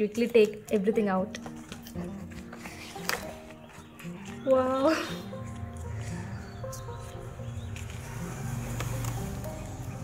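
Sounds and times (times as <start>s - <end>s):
soft background music: 0.0s - 10.0s
paper crackling: 0.2s - 4.5s.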